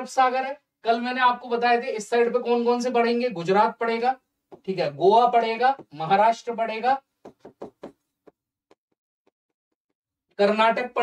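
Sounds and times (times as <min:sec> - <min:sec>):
marker tapping on writing board: 0:04.5 - 0:04.7, 0:05.7 - 0:06.1, 0:07.2 - 0:10.0.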